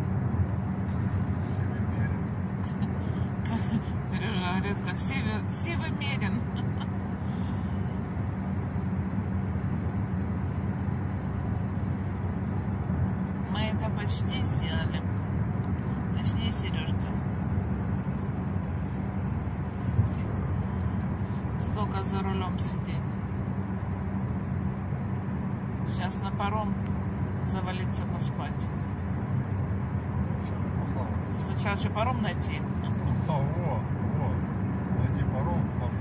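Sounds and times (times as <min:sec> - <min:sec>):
car road and engine noise: 0:00.0 - 0:36.0.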